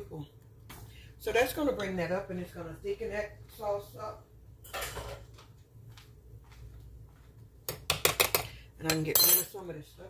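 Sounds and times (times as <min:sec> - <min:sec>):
dishes and utensils clattering: 0:04.6 - 0:05.3.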